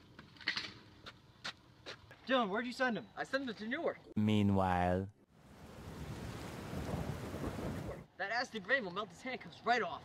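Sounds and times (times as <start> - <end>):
heavy rain: 5.5 - 7.9
low rumble of thunder: 5.8 - 8.0.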